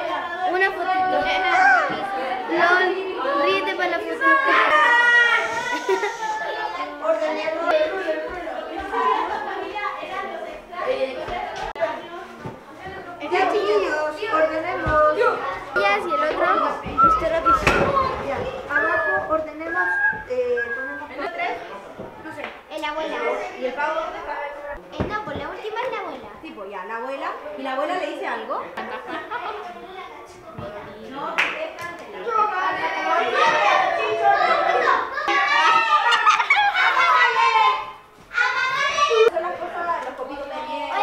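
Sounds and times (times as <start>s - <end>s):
children talking: 0.0s - 41.0s.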